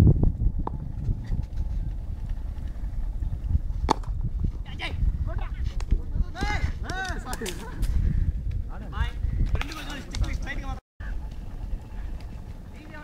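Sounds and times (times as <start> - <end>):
low wind rumble on microphone: 0.0 - 13.0.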